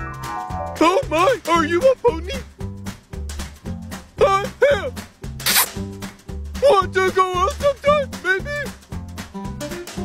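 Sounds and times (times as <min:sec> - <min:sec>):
background music with steady beat: 0:00.0 - 0:10.0
short breathy hiss: 0:05.4 - 0:05.7.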